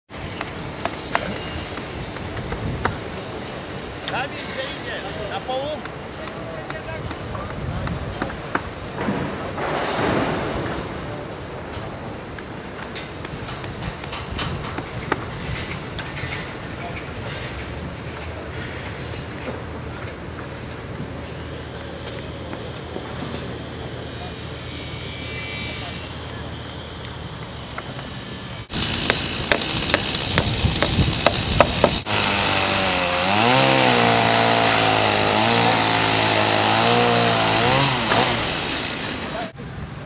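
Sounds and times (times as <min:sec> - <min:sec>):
construction site noise: 0:00.1 - 0:40.0.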